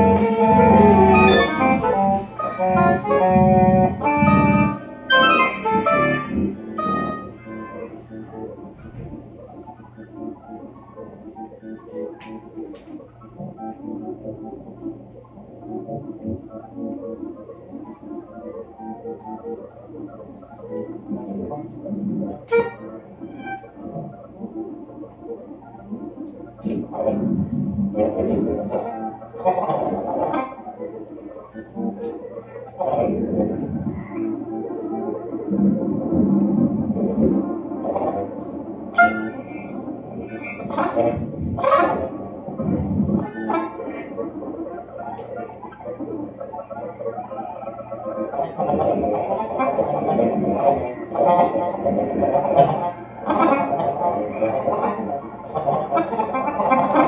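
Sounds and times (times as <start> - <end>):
keyboard synthesizer notes: 0.0 - 57.0.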